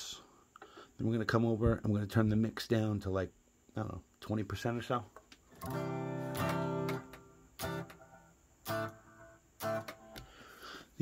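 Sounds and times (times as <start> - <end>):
acoustic guitar strums: 5.5 - 10.6.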